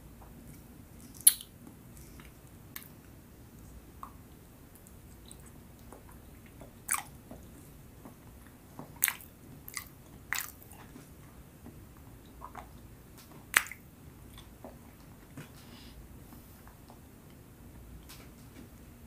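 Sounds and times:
wet chewing smacks and clicks: 0.5 - 7.7, 8.4 - 11.1, 12.3 - 14.6.

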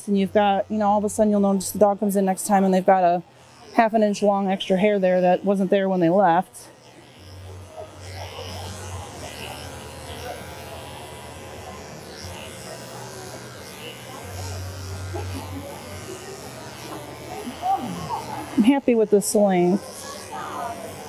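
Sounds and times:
electric clippers buzzing: 0.0 - 21.0.

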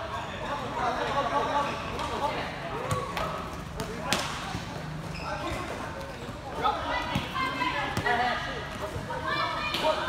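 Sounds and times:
ball kicked and bouncing on hard court: 2.8 - 6.4, 7.0 - 9.1.

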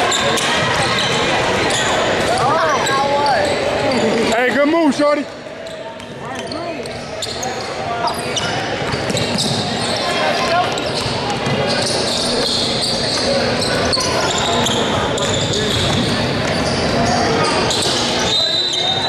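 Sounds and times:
spectators chattering and shouting: 0.0 - 19.0
basketball bouncing on court: 8.4 - 12.0, 14.8 - 17.0.

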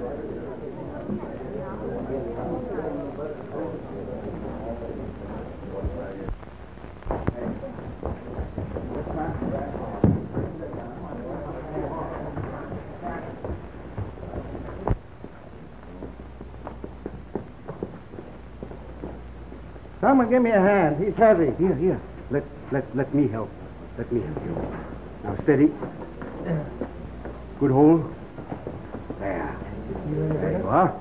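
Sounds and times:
people talking indistinctly: 0.0 - 16.8, 20.0 - 31.0
steady low hum: 0.0 - 31.0.

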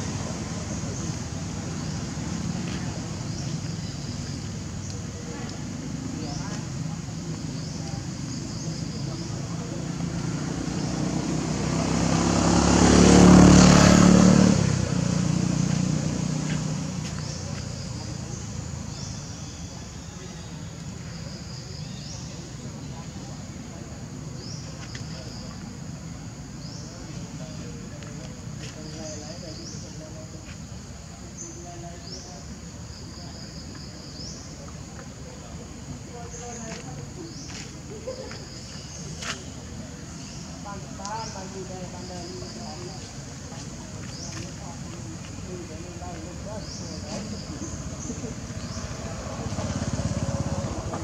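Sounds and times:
vehicle engine passing by: 0.0 - 4.6, 5.3 - 19.2, 33.4 - 51.0.

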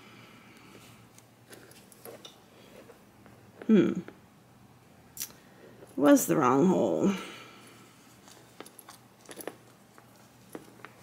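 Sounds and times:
bag clasp handling noise: 8.2 - 11.0.

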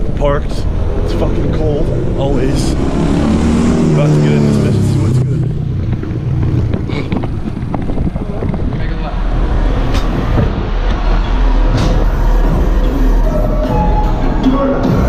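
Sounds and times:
muffled bass-heavy dance music: 8.2 - 15.0.

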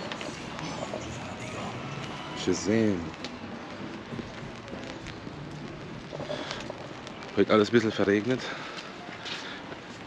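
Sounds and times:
light rain hissing: 0.5 - 9.7
raindrop ticks: 3.0 - 9.9.

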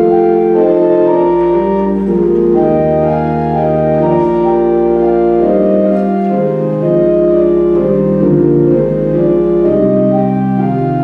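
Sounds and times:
church organ playing chords: 0.0 - 11.0.

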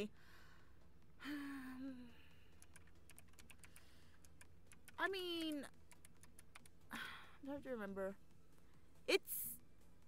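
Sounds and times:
woman breathing: 0.1 - 2.6, 3.6 - 4.3
woman humming: 1.2 - 2.3
computer keyboard typing: 2.5 - 6.8.

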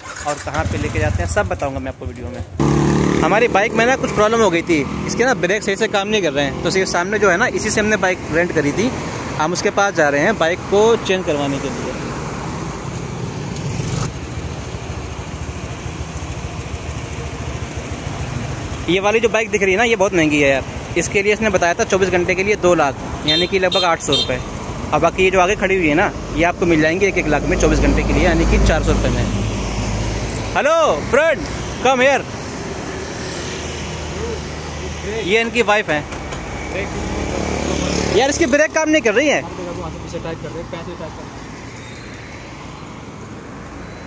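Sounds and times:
traffic hum: 0.0 - 44.0
motor scooter passing: 2.6 - 4.1, 36.3 - 38.2.

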